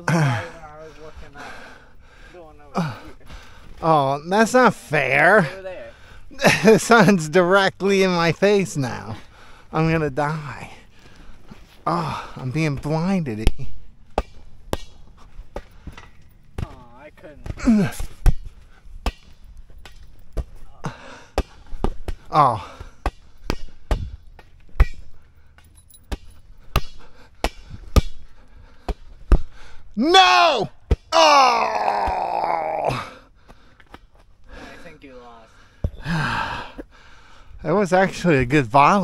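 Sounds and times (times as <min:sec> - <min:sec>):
person groaning: 0:00.0 - 0:00.6, 0:02.7 - 0:03.2, 0:17.6 - 0:18.0, 0:22.3 - 0:22.8, 0:31.2 - 0:33.2.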